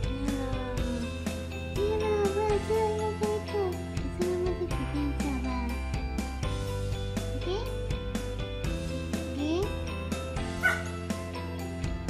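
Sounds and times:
background music with beat: 0.0 - 12.0
dog yipping: 10.6 - 11.0.

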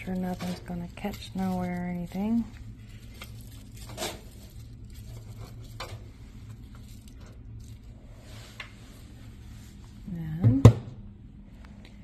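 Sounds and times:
faint clicks and rustles: 0.0 - 10.0
low steady hum: 0.0 - 12.0.

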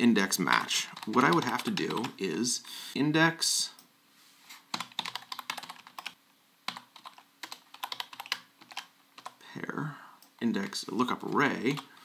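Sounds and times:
keyboard typing: 0.9 - 2.2, 4.7 - 9.4.

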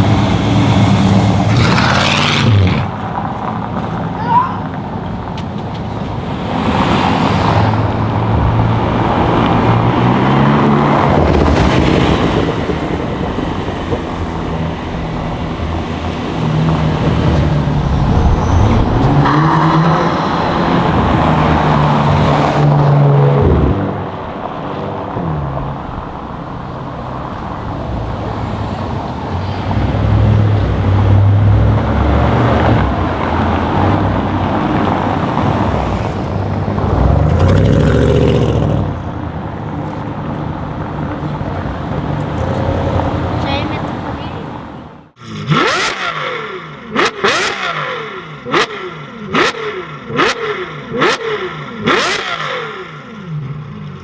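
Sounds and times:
car engines driving past: 0.0 - 54.0.

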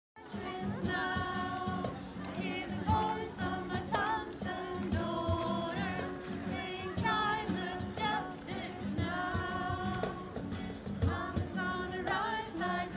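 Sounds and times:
women singing together: 0.2 - 12.9.

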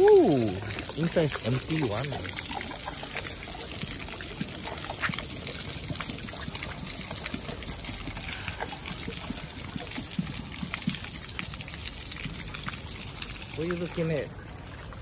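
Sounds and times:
small water splashes: 0.0 - 15.0
water pouring onto wet ground: 0.0 - 15.0.

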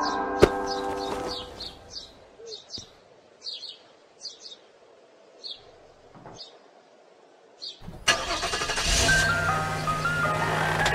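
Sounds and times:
van engine humming: 7.9 - 10.9
ice cream van chime melody: 8.8 - 10.9.

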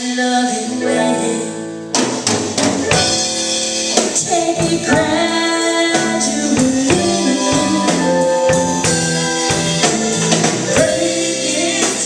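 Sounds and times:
electric guitar melody: 0.4 - 12.0
drum kit hits: 1.8 - 12.0.

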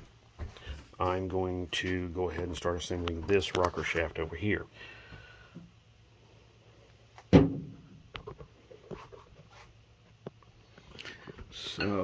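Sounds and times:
sharp loud knock: 7.3 - 7.8.

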